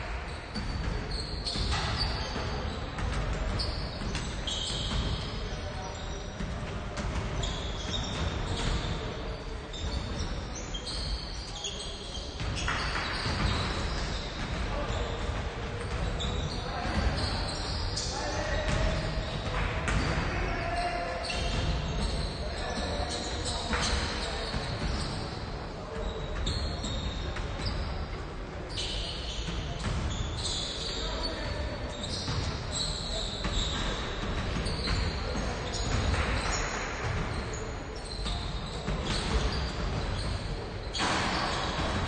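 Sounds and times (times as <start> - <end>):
basketballs bouncing on hardwood: 0.6 - 5.5, 6.4 - 9.0, 12.4 - 18.0, 18.6 - 20.2, 29.5 - 30.2.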